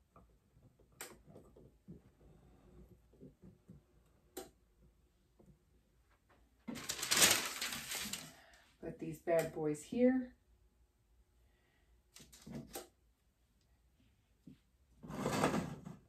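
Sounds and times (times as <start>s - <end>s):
paper rustling: 6.7s - 8.5s.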